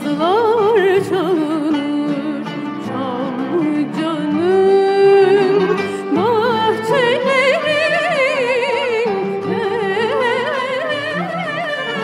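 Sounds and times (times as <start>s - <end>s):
woman singing ornamented melody: 0.0s - 12.0s.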